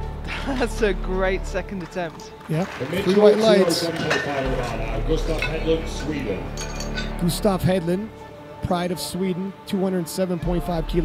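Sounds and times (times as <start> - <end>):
light metallic clinks: 6.6 - 7.2.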